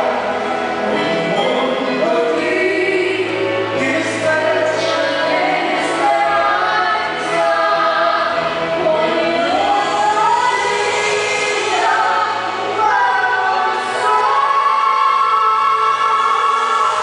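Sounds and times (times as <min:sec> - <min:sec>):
woman singing into microphone: 0:00.8 - 0:17.0.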